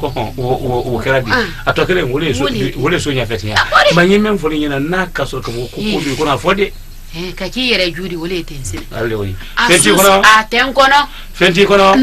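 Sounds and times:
man talking: 0:00.0 - 0:06.7, 0:08.9 - 0:10.2, 0:11.4 - 0:12.0.

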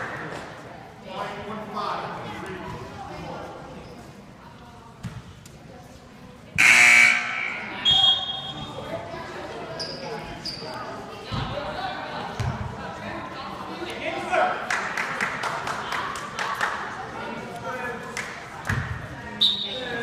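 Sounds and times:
murmur of voices: 0:00.0 - 0:20.0
loud buzzer: 0:06.6 - 0:08.5
short high whistle: 0:07.1 - 0:08.7.

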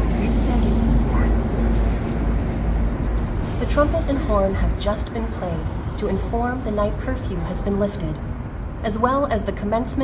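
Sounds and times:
city traffic rumble: 0:00.0 - 0:10.0.

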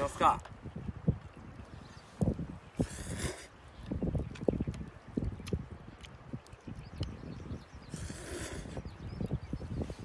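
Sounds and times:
slurping noodles: 0:02.8 - 0:03.5, 0:07.9 - 0:08.8.

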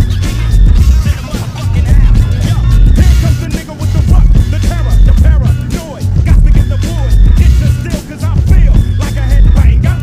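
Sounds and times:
rapping over bass-heavy beat: 0:00.0 - 0:10.0.

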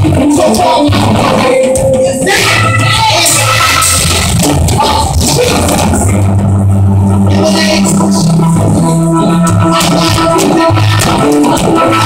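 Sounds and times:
bass guitar notes: 0:00.0 - 0:12.0
live band music: 0:00.0 - 0:12.0
sharp percussion hits: 0:01.0 - 0:06.5.

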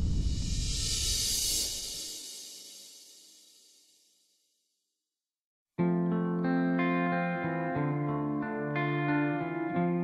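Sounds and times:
bright hissy music hit: 0:00.0 - 0:04.0.

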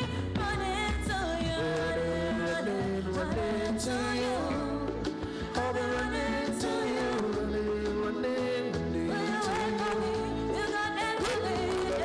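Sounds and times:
instrumental accompaniment: 0:00.0 - 0:12.0
woman singing pop song: 0:00.0 - 0:12.0.

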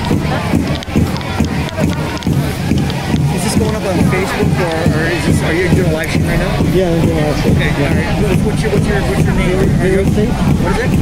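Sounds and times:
crowd babble: 0:00.0 - 0:11.0
steady low rumble: 0:00.0 - 0:11.0.

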